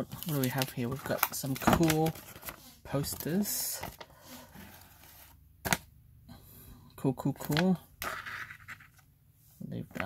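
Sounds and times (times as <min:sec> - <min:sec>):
paper rustling: 0:00.0 - 0:05.3.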